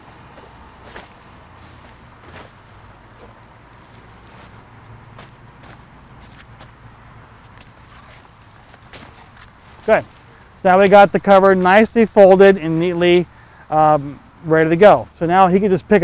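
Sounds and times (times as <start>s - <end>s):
footsteps: 0.0s - 10.4s
cover scuffing and rustling on dirt: 0.0s - 11.9s.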